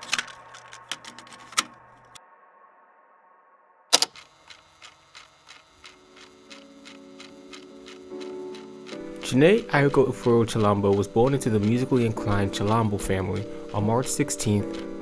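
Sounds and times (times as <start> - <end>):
small clicks: 3.9 - 15.0
tape running with ticking: 3.9 - 15.0
music: 5.8 - 15.0
soft held musical tones: 5.8 - 15.0.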